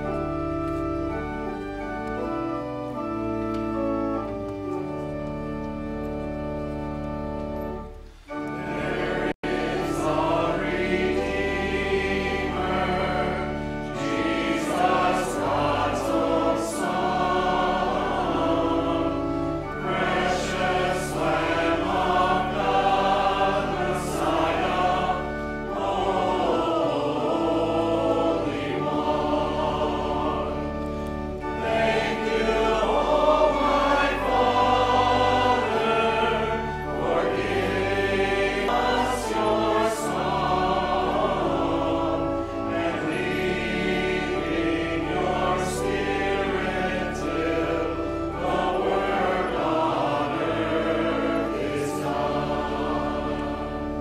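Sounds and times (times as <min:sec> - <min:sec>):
congregation singing a hymn: 0:00.0 - 0:54.0
sustained low accompaniment: 0:00.0 - 0:54.0.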